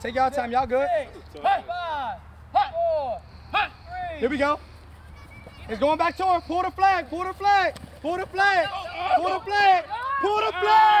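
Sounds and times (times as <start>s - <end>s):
people shouting high-pitched: 8.7s - 11.0s.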